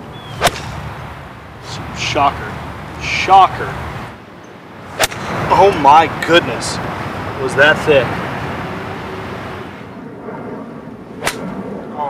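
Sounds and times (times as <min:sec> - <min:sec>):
faint outdoor rushing noise: 0:00.0 - 0:12.0.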